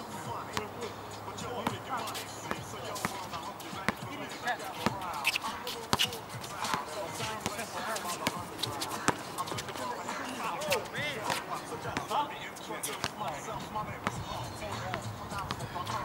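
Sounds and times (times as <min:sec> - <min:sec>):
players' voices: 0:00.0 - 0:16.0
basketball bouncing on hard court: 0:04.8 - 0:05.0.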